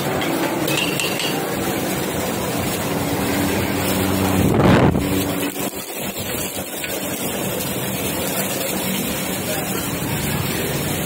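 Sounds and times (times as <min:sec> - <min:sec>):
wok stoves rushing with hum: 0:00.0 - 0:11.0.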